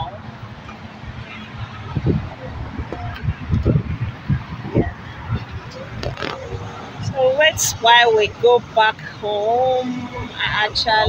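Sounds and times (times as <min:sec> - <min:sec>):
low rumbling on microphone: 0:00.0 - 0:07.3
muffled voices: 0:00.0 - 0:11.0.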